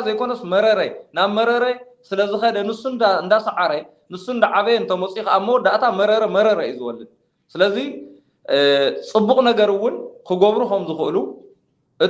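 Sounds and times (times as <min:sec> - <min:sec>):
man speaking: 0:00.0 - 0:11.4.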